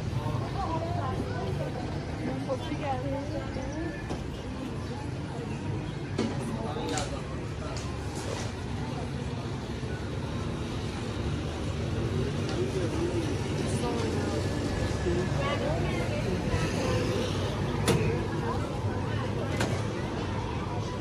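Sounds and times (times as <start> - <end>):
low traffic rumble: 0.0 - 21.0
passers-by talking: 0.0 - 21.0.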